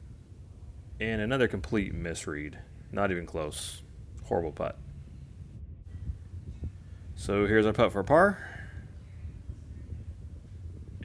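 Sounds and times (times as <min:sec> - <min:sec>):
wind rumble on microphone: 0:00.0 - 0:11.0
faint low thumps: 0:03.8 - 0:07.5.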